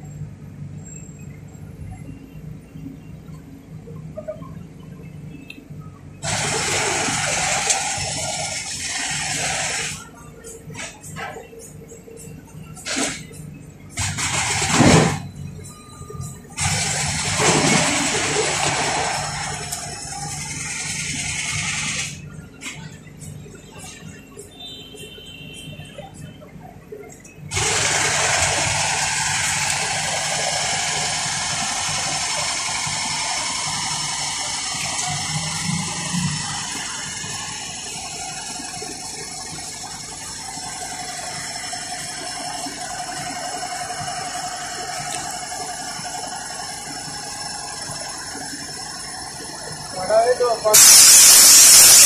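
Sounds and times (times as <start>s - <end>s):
loud hissing spray: 6.2s - 10.0s, 27.5s - 37.8s, 50.7s - 52.0s.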